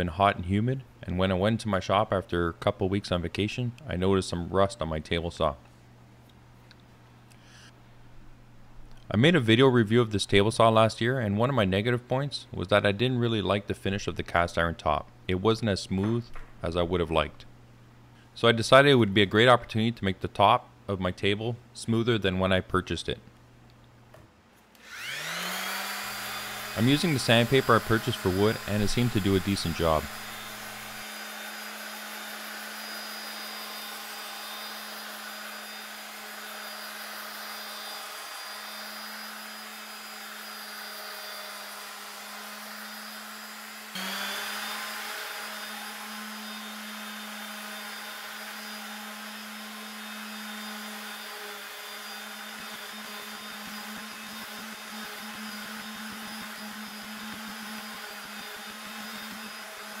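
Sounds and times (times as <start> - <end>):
orbit sander humming: 24.8 - 60.0.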